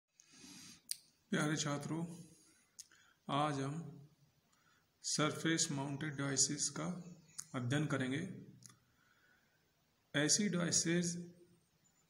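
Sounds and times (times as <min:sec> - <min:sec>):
man speaking: 0:01.3 - 0:02.4, 0:03.3 - 0:04.1, 0:05.0 - 0:08.6, 0:10.1 - 0:11.3.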